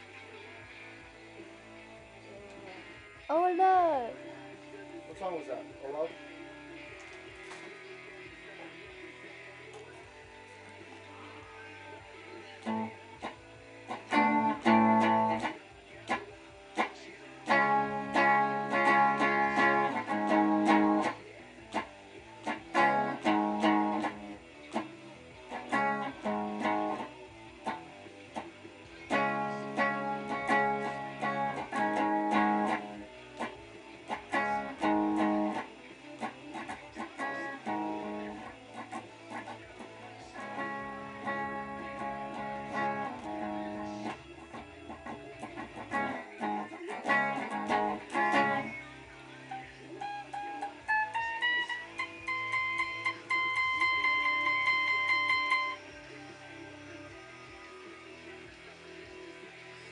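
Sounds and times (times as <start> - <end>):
electric guitar chords strummed: 0.0 - 59.9
electric guitar single notes: 12.6 - 24.9, 25.5 - 28.5, 29.1 - 48.8, 49.5 - 55.9.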